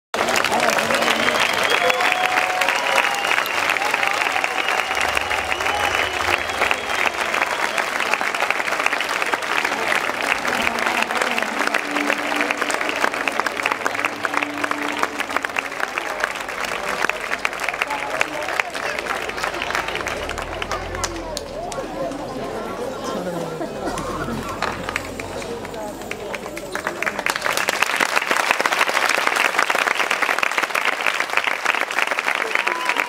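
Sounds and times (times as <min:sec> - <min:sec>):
audience applauding: 0:00.1 - 0:33.0.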